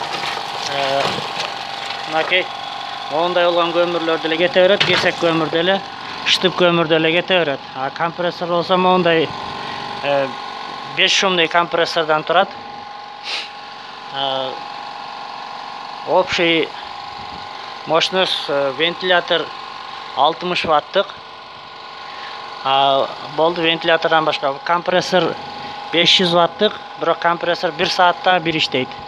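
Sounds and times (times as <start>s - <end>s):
air compressor humming: 0.0s - 29.0s
person speaking: 0.6s - 1.3s, 2.0s - 12.5s, 14.1s - 14.6s, 16.1s - 16.9s, 17.8s - 19.5s, 20.2s - 21.2s, 22.2s - 29.0s.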